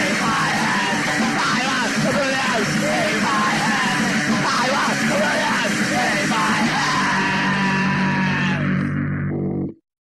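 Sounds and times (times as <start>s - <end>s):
yelled vocals: 0.0s - 9.0s
distorted guitar: 0.0s - 9.8s.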